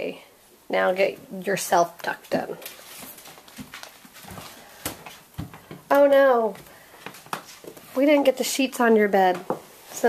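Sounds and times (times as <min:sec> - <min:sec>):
soft footsteps: 0:02.3 - 0:08.3.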